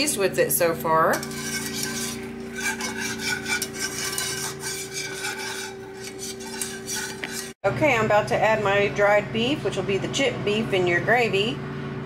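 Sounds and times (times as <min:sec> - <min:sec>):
whisk scraping pan: 0:00.0 - 0:07.6.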